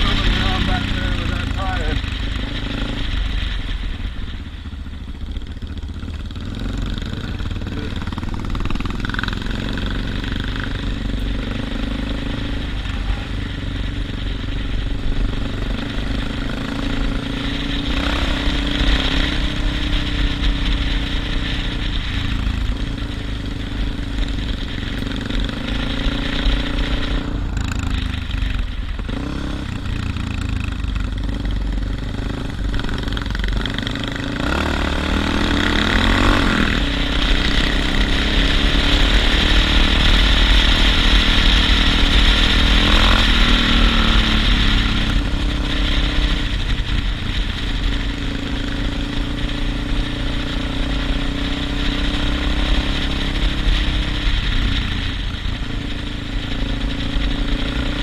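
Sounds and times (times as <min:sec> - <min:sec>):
motorcycle engine running: 0:00.0 - 0:58.0
rattle: 0:00.0 - 0:58.0.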